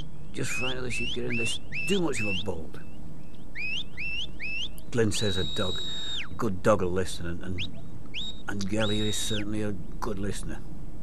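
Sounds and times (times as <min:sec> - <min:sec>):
shepherd's rising whistles: 0:03.6 - 0:06.3, 0:07.6 - 0:09.4.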